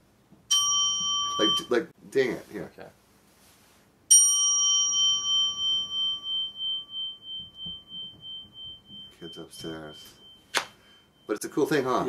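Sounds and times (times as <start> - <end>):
metal singing bowl ringing: 0.5 - 1.8, 4.1 - 12.0.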